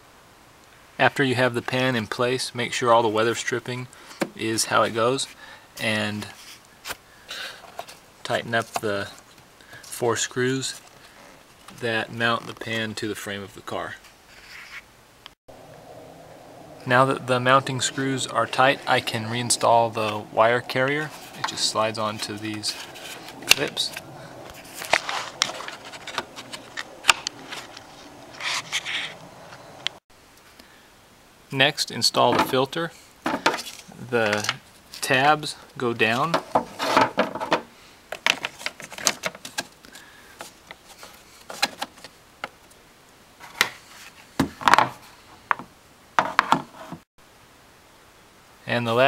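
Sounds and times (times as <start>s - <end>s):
plastic scrape: 13.9s - 14.8s, 18.2s - 29.7s, 36.4s - 37.6s.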